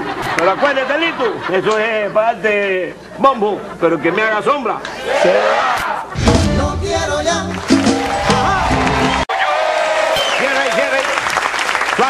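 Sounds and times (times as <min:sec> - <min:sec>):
audience applauding: 0:07.4 - 0:12.0.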